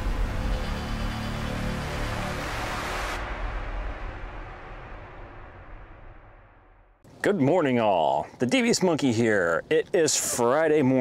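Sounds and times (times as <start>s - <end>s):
cinematic intro music: 0.0s - 7.0s
deep rumble: 0.0s - 7.0s
whooshing effects: 0.0s - 7.0s.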